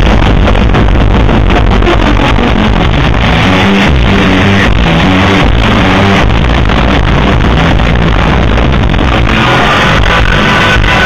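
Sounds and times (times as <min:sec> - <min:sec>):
distorted surf rock band: 0:00.0 - 0:11.0.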